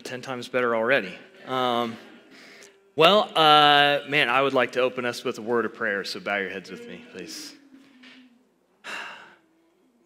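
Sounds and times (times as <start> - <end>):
man breathing: 2.1 - 2.9, 8.7 - 9.5.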